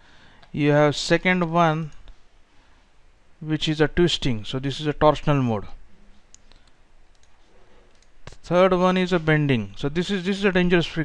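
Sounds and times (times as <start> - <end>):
computer mouse clicks: 6.3 - 8.2.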